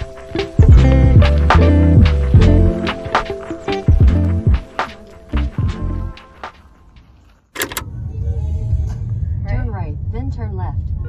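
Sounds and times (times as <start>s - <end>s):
car engine and road rumble: 7.6s - 8.2s.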